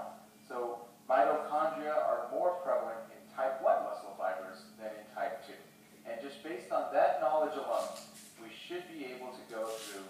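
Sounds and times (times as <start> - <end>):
person speaking: 0.0 - 10.0.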